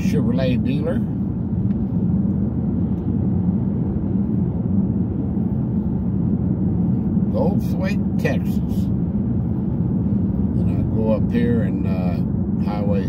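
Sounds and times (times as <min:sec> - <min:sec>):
vehicle road rumble from cabin: 0:00.0 - 0:13.0.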